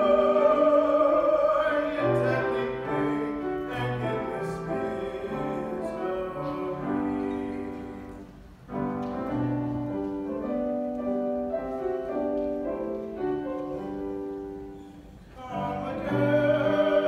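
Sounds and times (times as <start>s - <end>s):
classical piano accompaniment: 0.0s - 17.0s.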